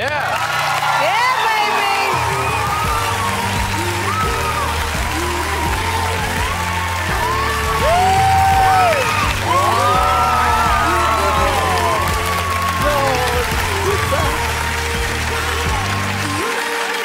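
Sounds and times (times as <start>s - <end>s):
audience applauding and cheering: 0.0s - 17.0s
background music: 0.0s - 17.0s.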